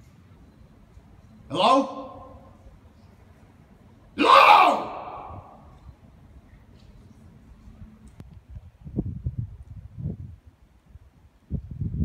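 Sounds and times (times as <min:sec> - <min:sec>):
man shouting with echo: 0:01.5 - 0:02.4, 0:04.2 - 0:05.5.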